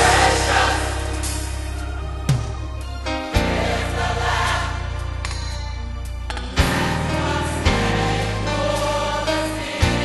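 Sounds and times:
gospel choir singing: 0:00.0 - 0:05.2, 0:06.6 - 0:10.0.

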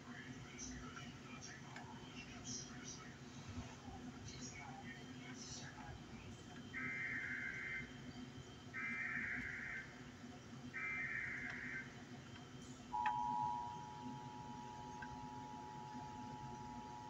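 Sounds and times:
high chord-like tone: 0:12.9 - 0:17.0.

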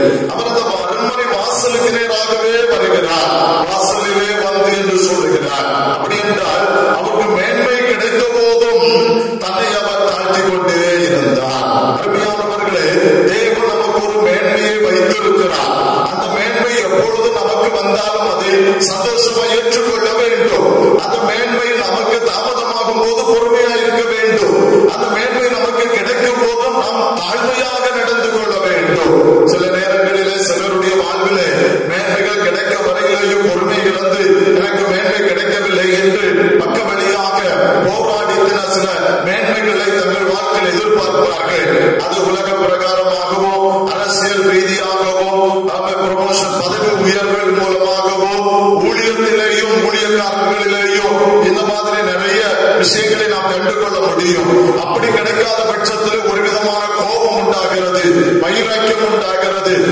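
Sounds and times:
man preaching into microphone: 0:00.0 - 0:59.9
man singing chant-like melody: 0:00.0 - 0:59.9.

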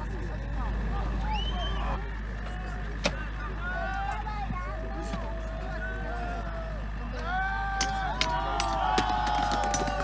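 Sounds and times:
distant shouting voices: 0:00.0 - 0:10.0.

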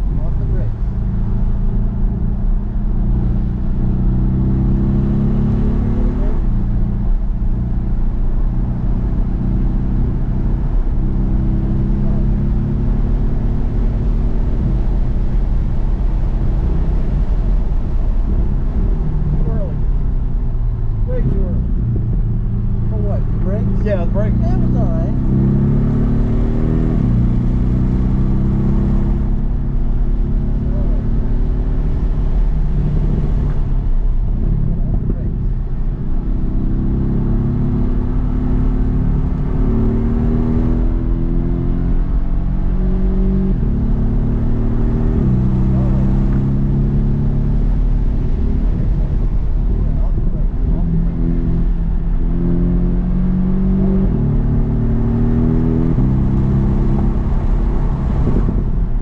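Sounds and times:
car engine accelerating: 0:00.0 - 0:59.0
road noise: 0:00.0 - 0:59.0.

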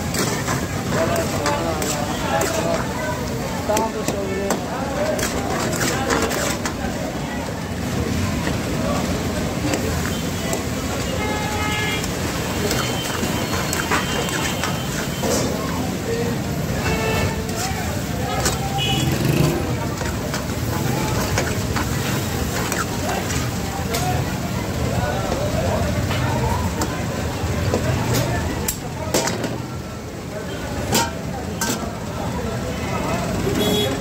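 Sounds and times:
metal utensils scraping a wok: 0:00.0 - 0:02.8
busy street kitchen roar: 0:00.0 - 0:34.0
people talking: 0:00.0 - 0:34.0.

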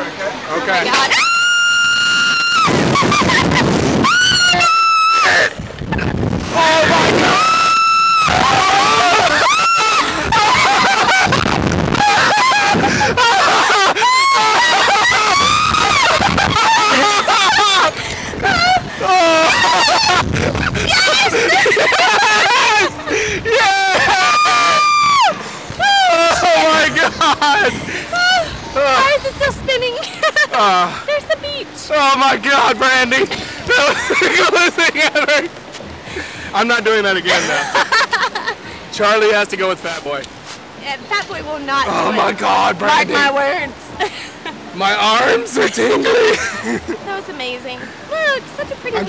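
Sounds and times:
rushing noise: 0:00.9 - 0:29.8
riders screaming: 0:01.0 - 0:05.6, 0:06.5 - 0:27.0.

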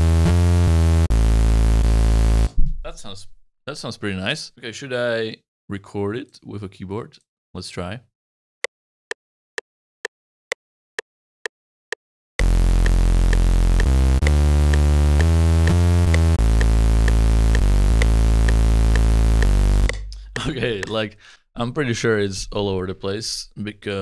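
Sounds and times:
synth with heavy low end: 0:12.4 - 0:20.7
metronome clicks: 0:12.8 - 0:20.9.

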